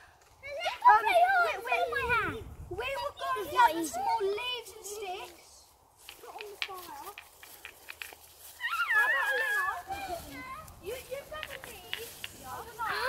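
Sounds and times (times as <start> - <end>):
light clicks and crackles: 6.0 - 8.6, 9.8 - 13.0
children squealing: 8.5 - 10.4.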